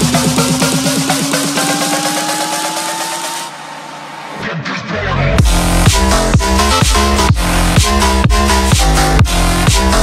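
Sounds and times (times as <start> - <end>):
rising synth tone: 0.0 - 8.2.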